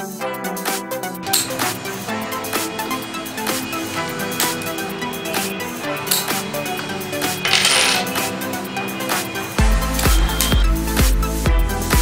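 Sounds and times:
electronic music with steady beat: 0.0 - 12.0
key clinking on a table: 7.4 - 8.3.

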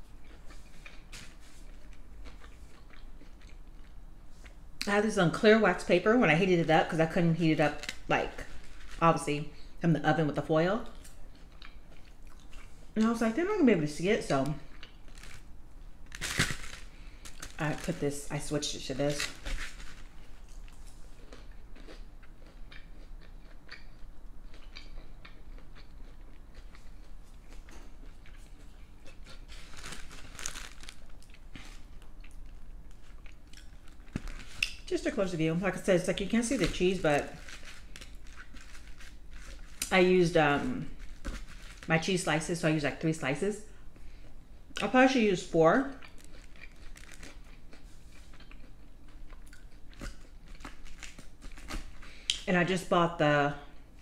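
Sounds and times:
person chewing with mouth clicks: 0.1 - 4.6, 10.9 - 13.0, 20.4 - 34.9, 46.0 - 52.5.

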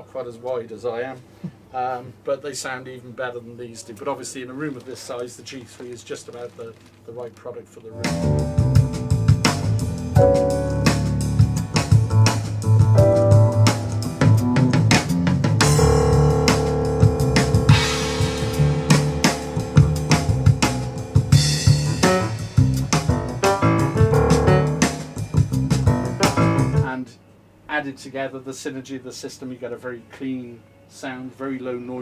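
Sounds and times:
drum hits: 8.0 - 26.9
music over loudspeakers: 8.0 - 26.9.

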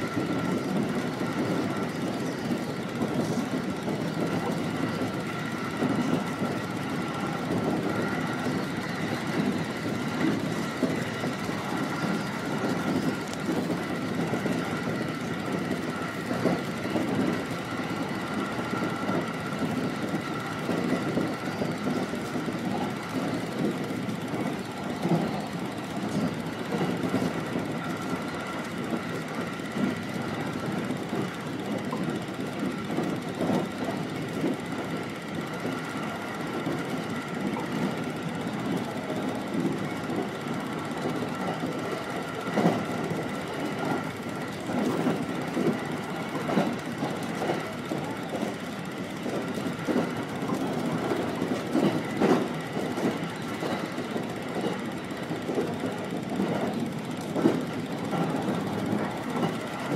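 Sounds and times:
train wheels rumbling on rails: 0.0 - 59.9
small clicks of wheels: 8.1 - 59.9.

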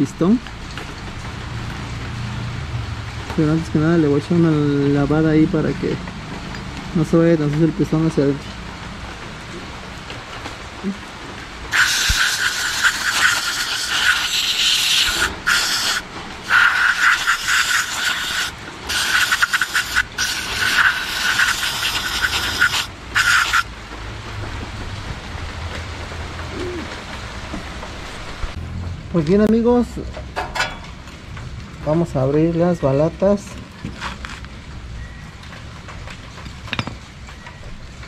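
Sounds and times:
aerosol spray hissing: 11.7 - 23.7.

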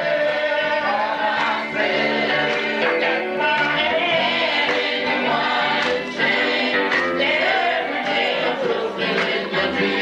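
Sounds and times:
electric guitars: 0.0 - 10.0
gospel group singing: 0.0 - 10.0.

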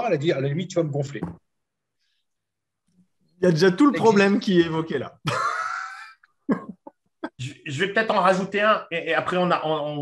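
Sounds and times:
man laughing: 5.2 - 7.6.

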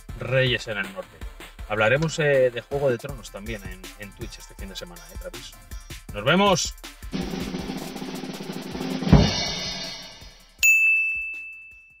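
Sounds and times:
drum-backed music: 0.0 - 10.6
bright bell-like ding: 10.6 - 12.0.

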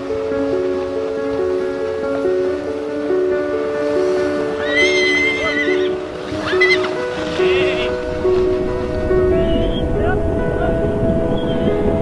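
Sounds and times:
music of held notes: 0.0 - 12.0
horse whinnying: 4.6 - 7.9.

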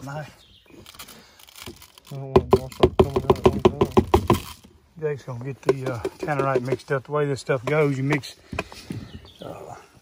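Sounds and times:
plastic crinkling: 0.7 - 3.2
man talking: 2.1 - 4.2, 5.0 - 8.4.

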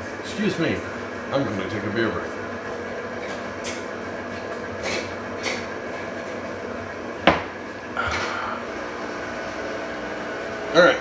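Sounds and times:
stand mixer motor running: 0.0 - 11.0.

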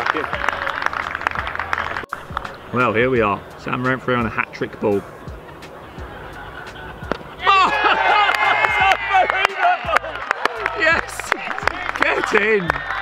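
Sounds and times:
fielders shouting and cheering: 0.0 - 13.0.

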